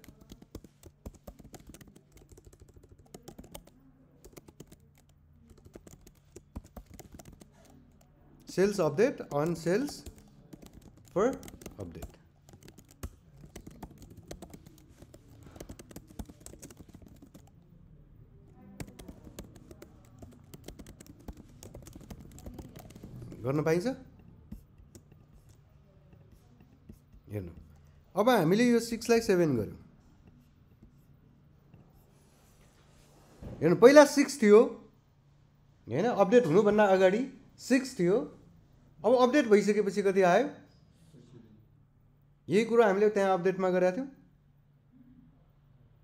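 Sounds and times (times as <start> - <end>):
typing on a computer keyboard: 0.0 - 17.7, 18.4 - 32.0.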